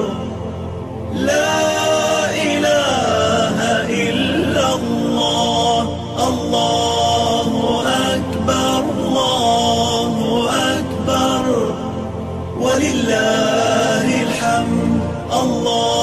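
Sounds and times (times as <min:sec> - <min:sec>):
person chanting devotional lines: 0:00.0 - 0:16.0.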